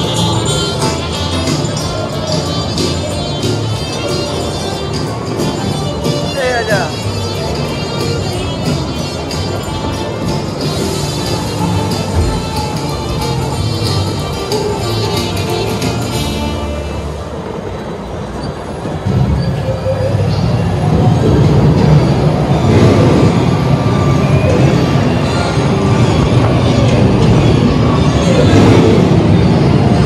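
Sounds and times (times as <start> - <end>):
amusement ride show music: 0.0 - 18.2.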